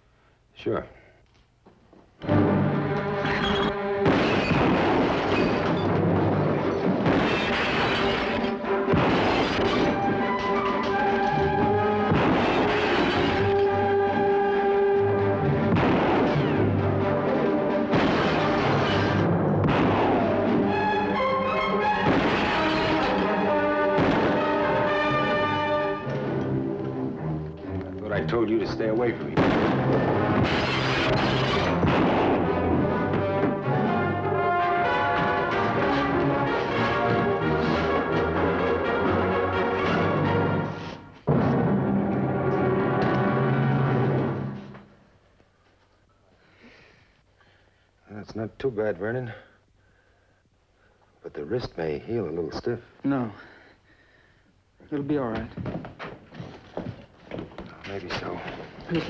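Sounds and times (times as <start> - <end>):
orchestral music with brass: 2.2 - 44.7
gunshots: 3.8 - 26.5, 28.8 - 38.7.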